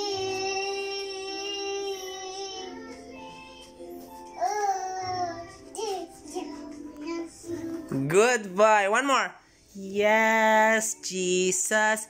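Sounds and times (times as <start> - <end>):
toddler singing: 0.0 - 8.0.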